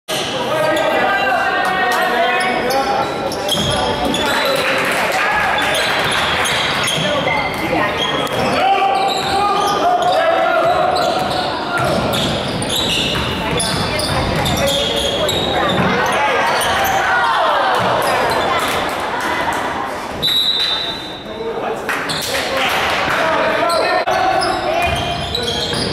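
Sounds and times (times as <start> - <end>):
echoing voices: 0.1 - 25.9
sneakers squeaking: 1.9 - 4.7, 5.4 - 21.3, 22.0 - 25.9.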